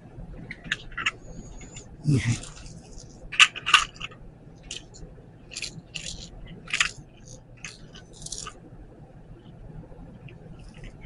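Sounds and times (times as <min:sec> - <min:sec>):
plastic parts clicking and crinkling: 0:00.5 - 0:08.6, 0:10.3 - 0:11.0.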